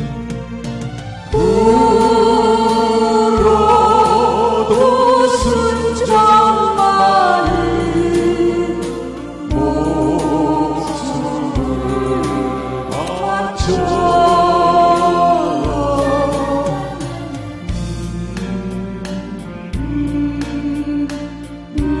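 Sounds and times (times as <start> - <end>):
instrumental accompaniment: 0.0 - 22.0
man and woman singing duet: 1.3 - 22.0.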